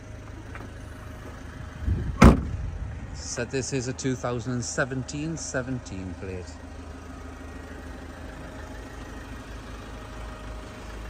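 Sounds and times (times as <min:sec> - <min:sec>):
steady low hum: 0:00.0 - 0:11.0
tailgate slamming shut: 0:01.9 - 0:02.6.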